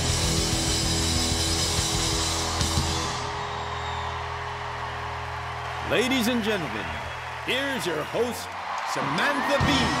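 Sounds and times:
distorted electric guitars: 0:00.0 - 0:03.3
drum kit: 0:00.0 - 0:03.5, 0:09.5 - 0:10.0.

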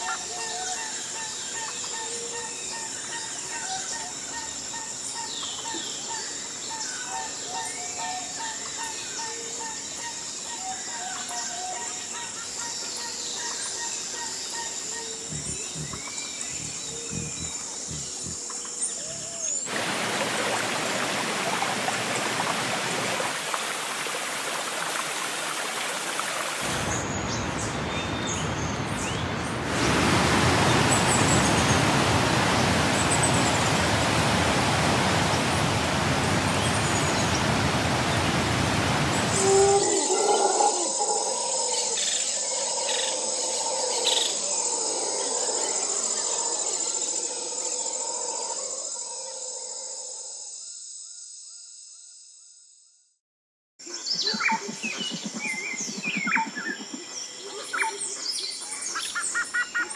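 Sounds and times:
birds calling: 0:14.7 - 0:23.2.

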